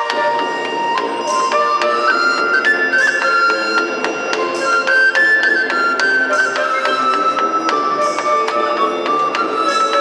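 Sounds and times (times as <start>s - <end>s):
pipe playing high melody: 0.0s - 10.0s
wind orchestra sustained notes: 0.0s - 10.0s.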